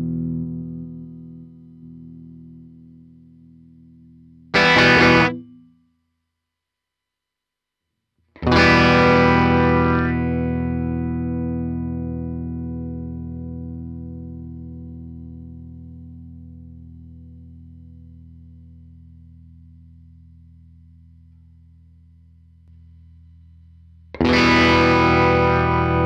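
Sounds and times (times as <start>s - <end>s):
electric guitar chords: 0.0s - 3.2s, 4.5s - 5.7s, 8.4s - 17.3s, 24.2s - 26.0s.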